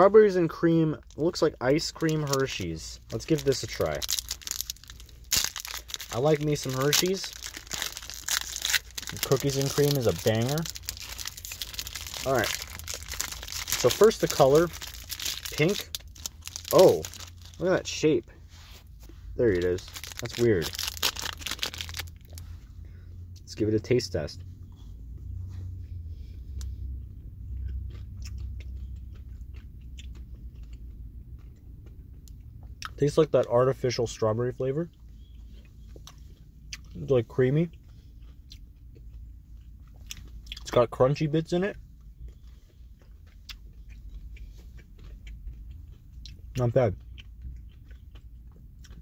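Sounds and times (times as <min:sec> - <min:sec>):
low steady hum: 0:00.0 - 0:49.0
low steady rumble: 0:00.0 - 0:49.0
chewing crunchy ice cream: 0:00.4 - 0:22.7, 0:26.5 - 0:49.0.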